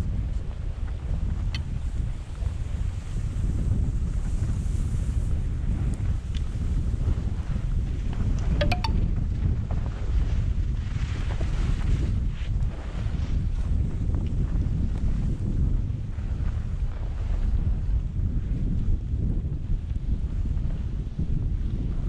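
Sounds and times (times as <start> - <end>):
wind buffeting microphone: 0.0 - 22.0
skis sliding over snow: 2.2 - 5.6, 10.1 - 15.4.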